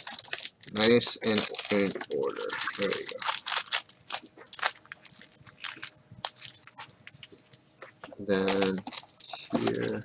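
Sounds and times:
card packs crinkling and clicking: 0.0s - 7.3s, 8.1s - 10.0s.

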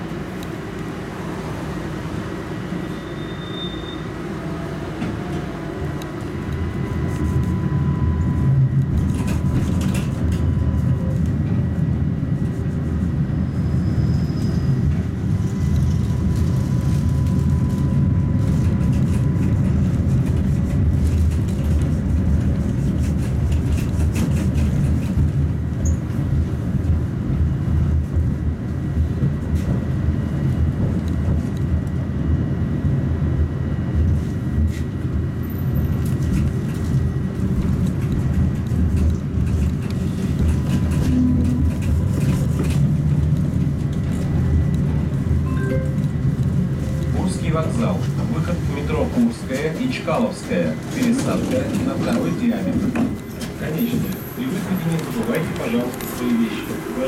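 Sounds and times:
tram rumble: 0.0s - 57.0s.

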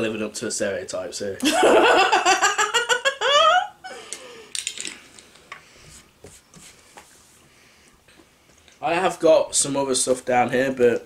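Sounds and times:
woman laughing: 1.4s - 4.1s.

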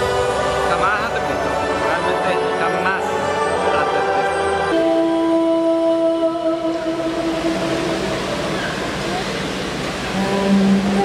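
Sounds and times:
long held note: 0.0s - 8.9s, 10.1s - 11.0s
rushing wind-like swell: 0.0s - 11.0s
low held note: 3.0s - 9.3s.

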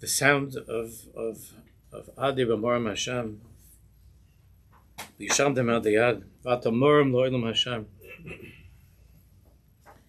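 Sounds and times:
man speaking: 0.0s - 3.4s, 5.2s - 8.5s.

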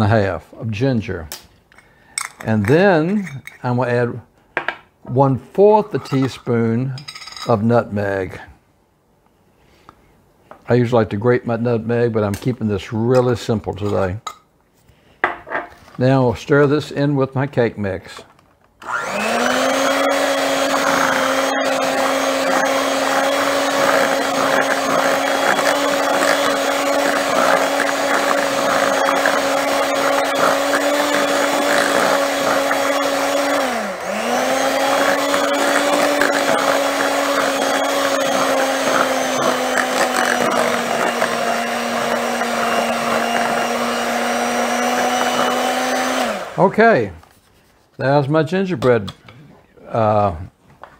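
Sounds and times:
electric hand mixer whirring: 18.8s - 46.7s.

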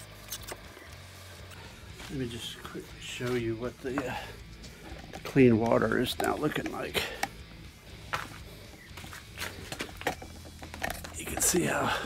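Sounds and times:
footsteps on garage floor: 7.9s - 10.0s.

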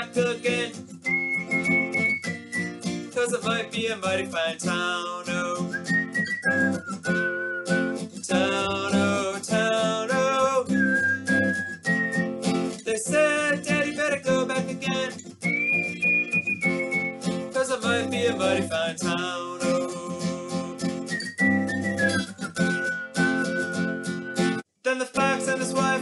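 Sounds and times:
acoustic guitar strumming: 0.0s - 26.0s
person singing folk melody: 0.0s - 26.0s.

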